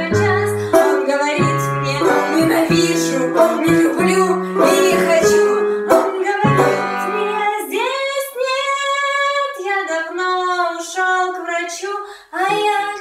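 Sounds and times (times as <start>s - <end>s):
banjo picking: 0.0s - 7.7s
high voice singing long notes: 0.0s - 7.8s.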